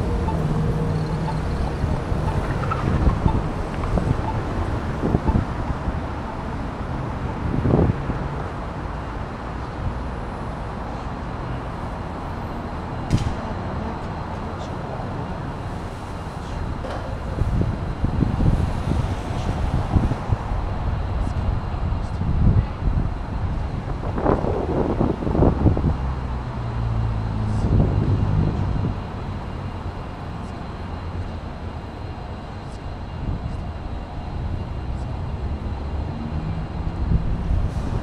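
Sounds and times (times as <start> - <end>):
wind rumbling on microphone: 0.0 - 10.0, 15.4 - 30.1, 32.0 - 38.0
city street traffic: 0.0 - 38.0
vehicle engine humming: 0.0 - 38.0.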